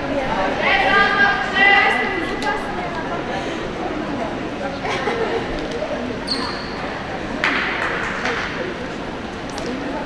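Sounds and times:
echoing voices: 0.0s - 6.2s
high squeak: 6.3s - 6.8s.

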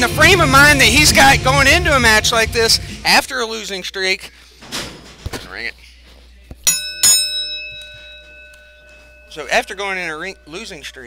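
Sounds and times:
ring bell ringing: 6.7s - 11.0s.

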